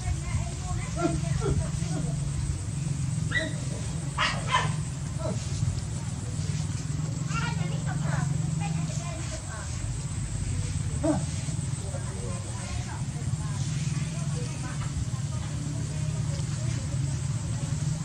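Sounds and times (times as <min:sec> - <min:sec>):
faint indistinct voices: 0:00.0 - 0:18.0
steady low hum: 0:00.0 - 0:18.0.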